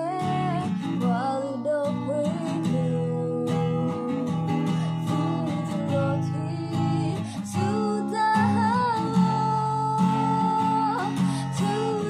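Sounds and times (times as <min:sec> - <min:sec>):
woman singing gospel song: 0:00.0 - 0:04.4, 0:05.0 - 0:12.0
strummed acoustic guitar: 0:00.0 - 0:12.0.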